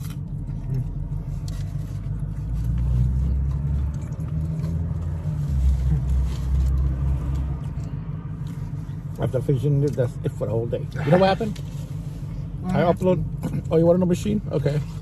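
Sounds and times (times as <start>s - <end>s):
car interior rumble: 0.0s - 15.0s.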